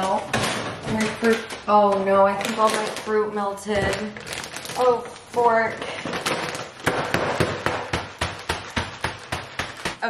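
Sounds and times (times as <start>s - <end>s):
bag of frozen fruit banging on counter: 5.9s - 10.0s.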